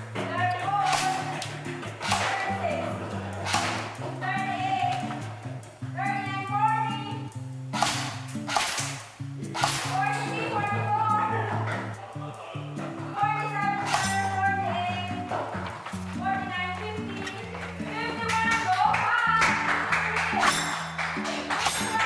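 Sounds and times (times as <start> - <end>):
song with singing voice: 0.0 - 5.4
percussion hits: 0.0 - 6.3, 7.4 - 10.9, 11.5 - 22.0.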